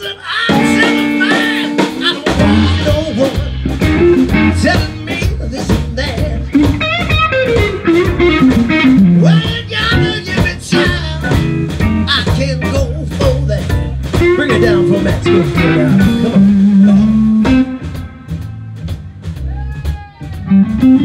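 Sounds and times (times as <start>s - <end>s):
drums: 0.0s - 21.0s
electric guitar: 0.0s - 21.0s.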